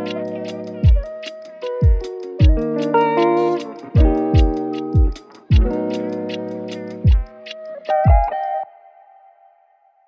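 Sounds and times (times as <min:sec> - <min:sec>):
hip hop beat: 0:00.0 - 0:08.6.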